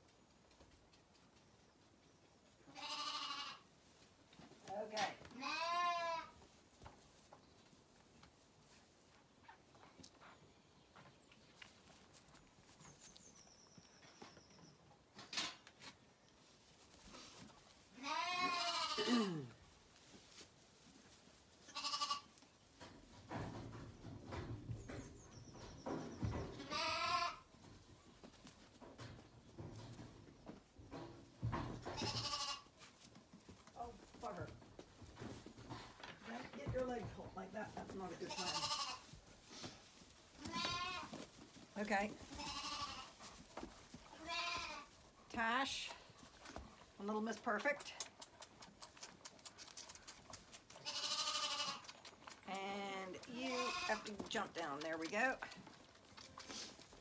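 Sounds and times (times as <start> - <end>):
lambs bleating: 2.7 - 3.6, 5.4 - 6.4, 18.0 - 19.2, 21.7 - 22.3, 26.7 - 27.4, 32.0 - 32.7, 38.2 - 39.1, 40.4 - 41.2, 42.3 - 43.2, 44.1 - 44.9, 50.8 - 51.9, 53.3 - 54.2.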